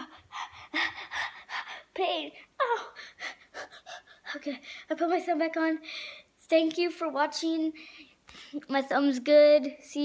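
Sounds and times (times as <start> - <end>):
boy gasping: 0.0 - 4.9, 5.8 - 6.3
boy whimpering cries: 2.6 - 4.4.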